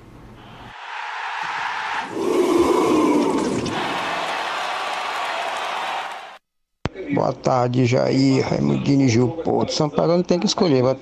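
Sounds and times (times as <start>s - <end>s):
crowd cheering and shouting: 0.7s - 6.4s.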